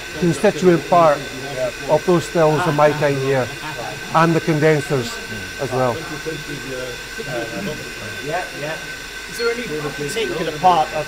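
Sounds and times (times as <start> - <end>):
machinery whine and hiss: 0.0 - 11.0
soft conversational voices: 0.0 - 11.0.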